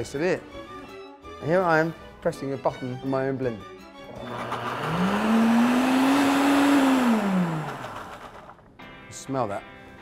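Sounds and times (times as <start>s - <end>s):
blender motor running: 4.1s - 8.6s.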